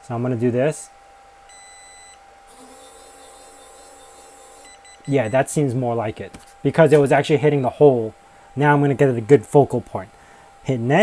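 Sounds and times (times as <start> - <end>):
laser engraver whirring: 1.0 - 8.8.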